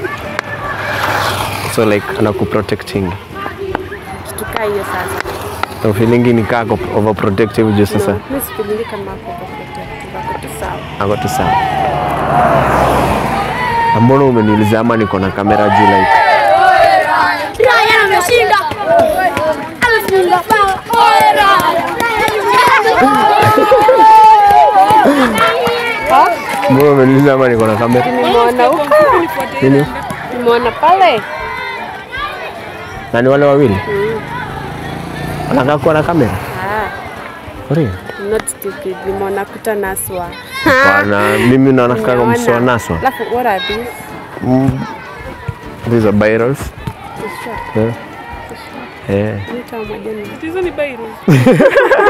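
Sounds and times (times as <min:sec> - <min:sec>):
children chattering and calling out: 0:00.0 - 0:52.0
faint outdoor background noise: 0:00.0 - 0:52.0
loud talk: 0:00.0 - 0:52.0.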